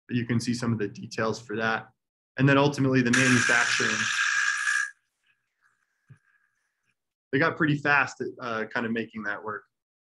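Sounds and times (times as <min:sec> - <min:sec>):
power drill boring into stone: 0:03.1 - 0:05.0.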